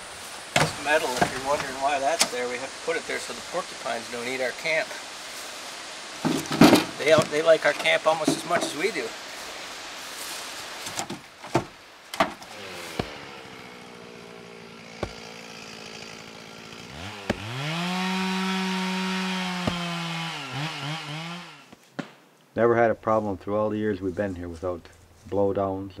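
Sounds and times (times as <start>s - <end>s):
firewood clunking onto a pile: 0.5s - 2.4s, 6.2s - 8.9s, 10.8s - 13.2s
chainsaw revving: 12.4s - 21.7s.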